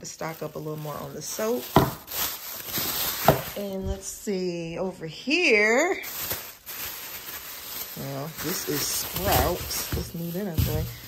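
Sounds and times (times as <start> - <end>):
plastic bags rustling: 0.0 - 11.0.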